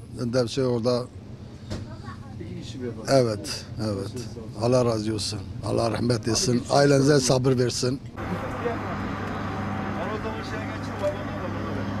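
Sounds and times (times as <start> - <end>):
parked train humming: 8.0 - 12.0
faint distant voices: 8.2 - 12.0.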